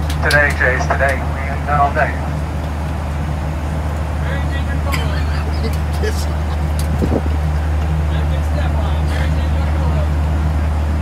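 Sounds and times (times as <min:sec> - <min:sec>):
airplane cabin drone: 0:00.0 - 0:11.0
faint passenger voices: 0:00.0 - 0:11.0.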